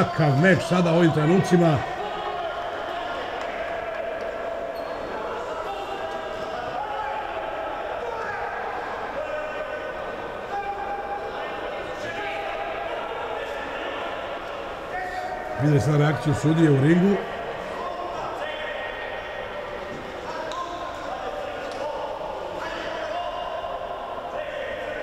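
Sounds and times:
murmur of spectators: 0.0 - 25.0.

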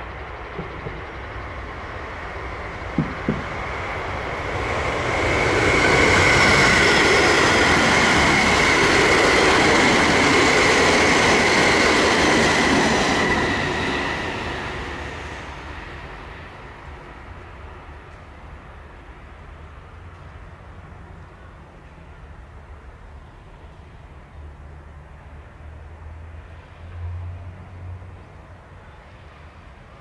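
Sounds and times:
rush of train wheels: 0.0 - 17.8
electric train passing: 0.0 - 30.0.

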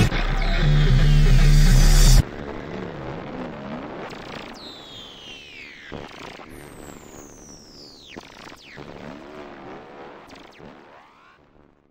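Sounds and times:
background music: 0.0 - 2.2
race car engine: 0.0 - 2.2
high whine: 0.0 - 5.9.

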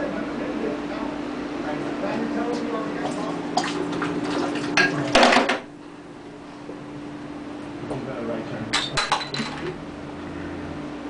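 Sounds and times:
beer splashing into sink: 3.0 - 5.7
glass bottle clinking: 8.7 - 9.7
bottle clattering: 8.8 - 9.7.

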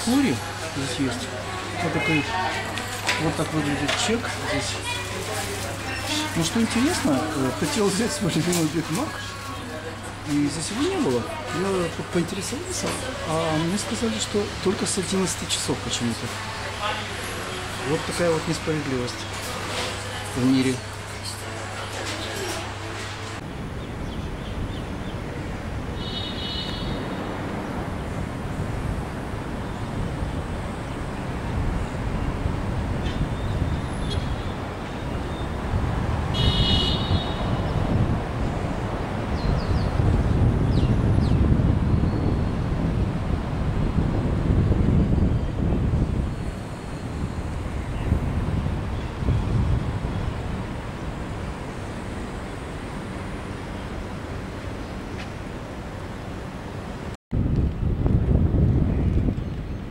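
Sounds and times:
road traffic rumble: 0.0 - 59.9.

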